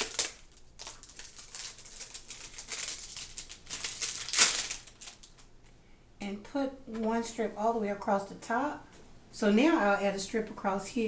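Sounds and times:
plastic crackle: 0.0 - 5.5
plastic packaging crinkling: 0.0 - 5.5.

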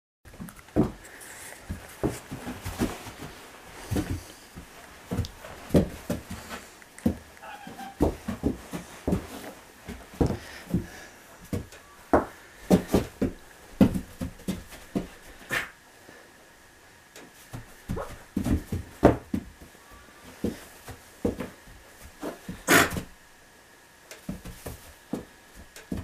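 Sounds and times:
donkey snuffling: 0.4 - 11.6, 14.8 - 15.8, 22.1 - 23.1.

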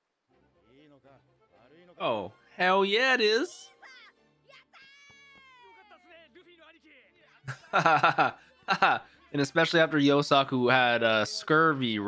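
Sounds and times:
quiet background music: 0.0 - 12.0
high cartoon voice shouting: 3.4 - 6.0.

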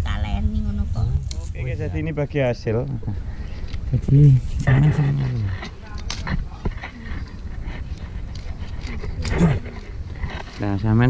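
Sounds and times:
steady low rumble: 0.0 - 11.0
person speaking: 3.9 - 7.4.

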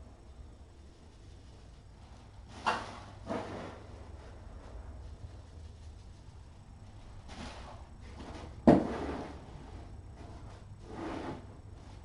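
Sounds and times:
scraping rustle: 1.1 - 12.0.

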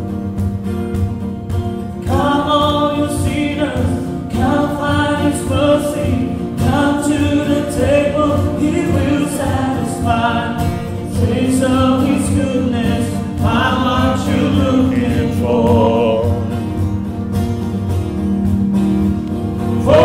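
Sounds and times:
acoustic guitar: 0.0 - 20.0
voices singing together: 2.1 - 16.6, 19.8 - 20.0.

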